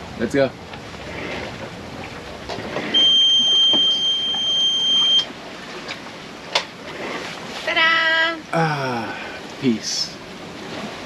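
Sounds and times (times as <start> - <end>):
water noise: 0.0 - 11.0
wind: 0.0 - 11.0
high-pitched alarm beep: 3.0 - 5.3.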